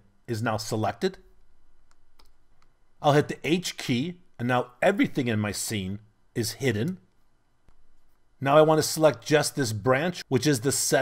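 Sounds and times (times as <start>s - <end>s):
computer mouse clicks: 1.8s - 2.8s.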